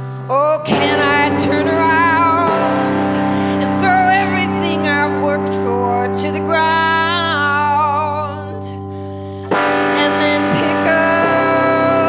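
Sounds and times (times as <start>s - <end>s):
bass guitar: 0.0s - 12.0s
distorted electric guitar: 0.0s - 12.0s
woman singing with vibrato: 0.0s - 12.0s.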